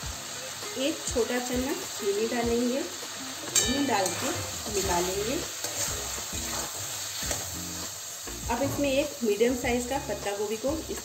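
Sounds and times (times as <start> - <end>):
food sizzling in metal pan: 0.0 - 11.0
metal spatula scraping pan: 3.5 - 7.5.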